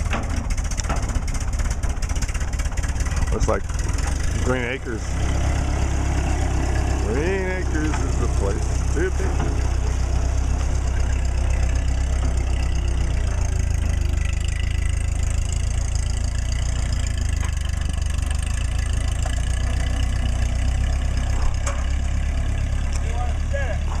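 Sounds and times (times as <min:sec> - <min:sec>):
tractor engine droning: 0:00.0 - 0:24.0.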